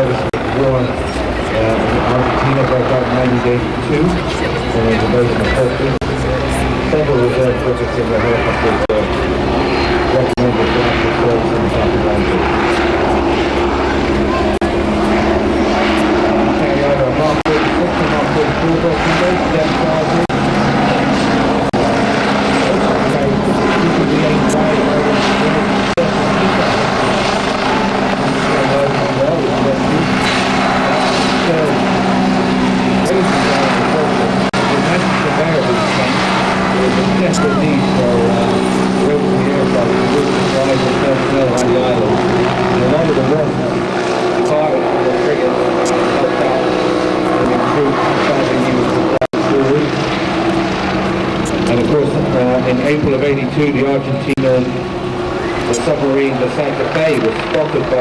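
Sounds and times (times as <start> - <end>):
helicopter flying past: 0.0 - 58.0.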